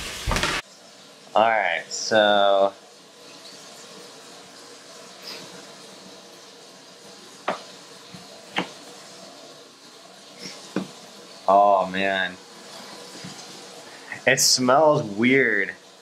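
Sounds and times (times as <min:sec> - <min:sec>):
knife tapping cutting board: 0:07.4 - 0:07.7, 0:08.5 - 0:08.8, 0:10.7 - 0:10.9.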